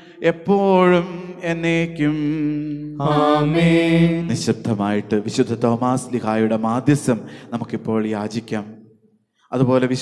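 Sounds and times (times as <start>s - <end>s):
man chanting a prayer: 4.3s - 8.8s.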